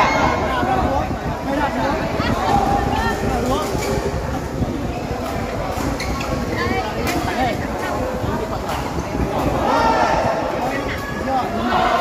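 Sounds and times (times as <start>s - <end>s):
indistinct talk: 0.0s - 12.0s.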